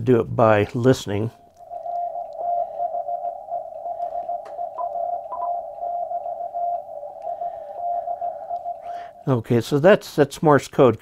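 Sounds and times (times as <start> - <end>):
morse code beeps: 1.6 - 9.3.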